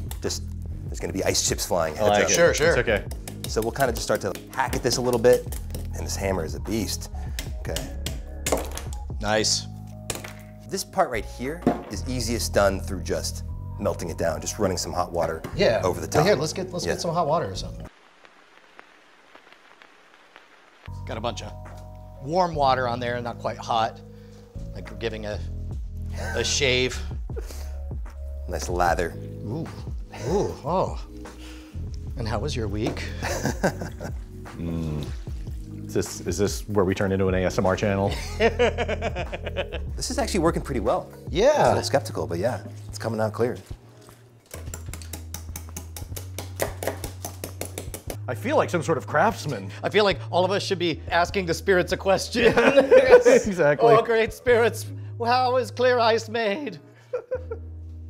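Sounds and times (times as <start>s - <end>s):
background music with bass: 0.0s - 17.9s, 20.9s - 43.8s
faint steady hiss: 15.6s - 26.9s
small crackling clicks: 17.8s - 20.9s.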